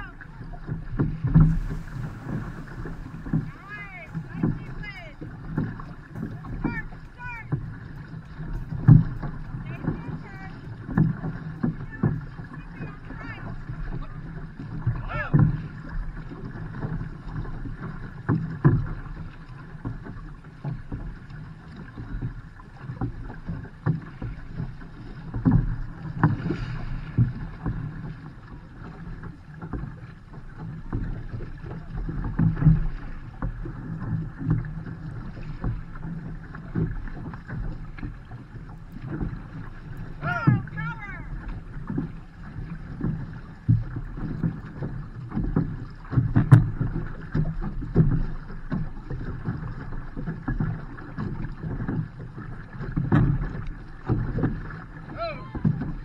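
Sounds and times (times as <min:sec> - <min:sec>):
paddles pulling through water: 0:00.0 - 0:56.0
water washing along hull: 0:00.0 - 0:56.0
person shouting: 0:40.2 - 0:41.3, 0:55.1 - 0:55.6.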